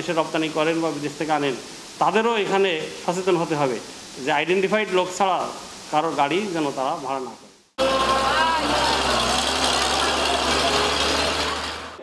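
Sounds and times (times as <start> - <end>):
dense traffic noise: 7.8 - 12.0
heavy truck engines: 7.8 - 12.0.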